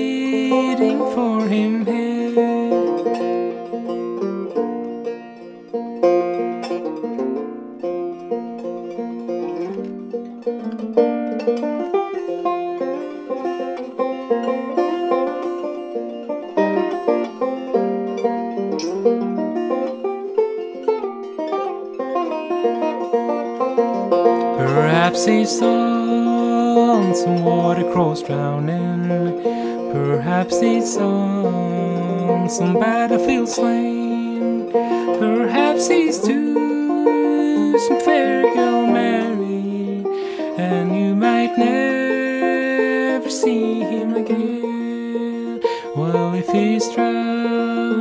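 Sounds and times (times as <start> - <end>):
banjo picking: 0.0 - 48.0.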